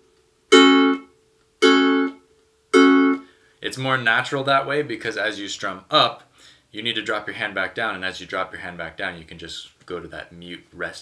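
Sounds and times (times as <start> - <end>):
ukulele palm-muted strum: 0.5 - 2.2.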